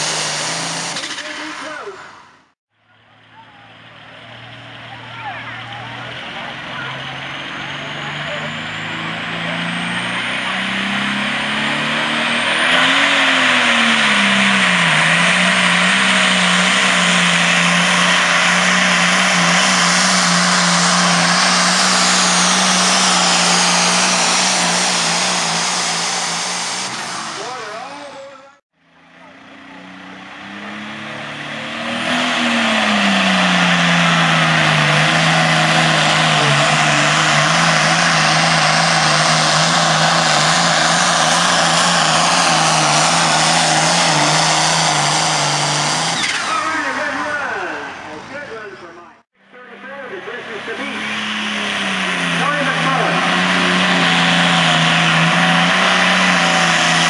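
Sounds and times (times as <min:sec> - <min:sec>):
diesel tractor engine at full throttle: 0:00.0 - 0:57.0.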